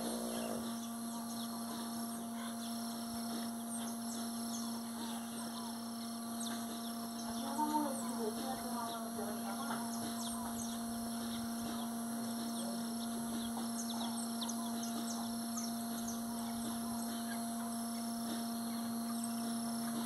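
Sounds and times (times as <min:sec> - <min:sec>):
small birds chirping: 0:00.0 - 0:20.0
steady low hum: 0:00.0 - 0:20.0.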